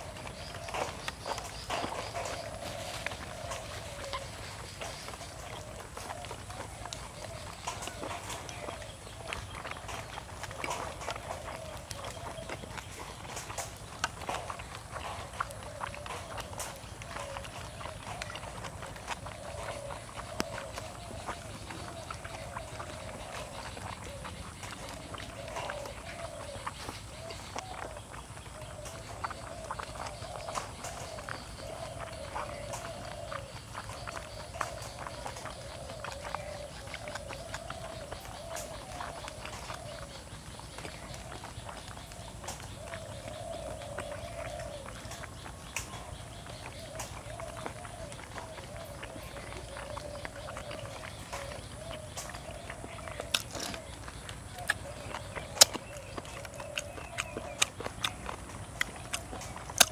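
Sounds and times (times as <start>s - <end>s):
chewing and lip-smacking: 0.0s - 59.9s.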